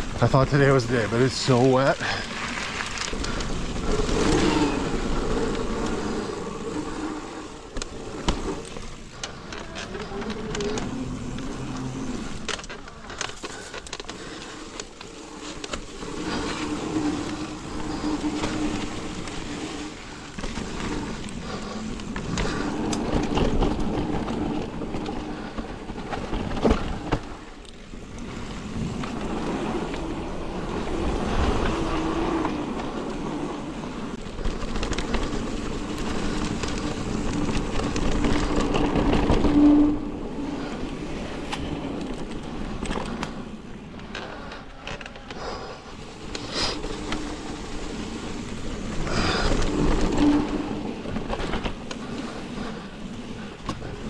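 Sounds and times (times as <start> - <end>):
bike rattling over bumps: 0.0 - 54.0
bike tyres on wet dirt: 0.0 - 54.0.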